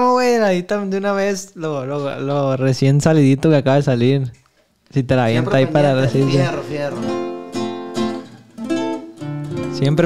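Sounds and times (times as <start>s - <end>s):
acoustic guitar chords ringing: 5.4s - 10.0s.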